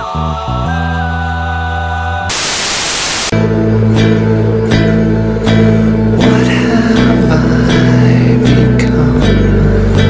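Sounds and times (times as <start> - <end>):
loud tv static hiss: 2.3 - 3.4.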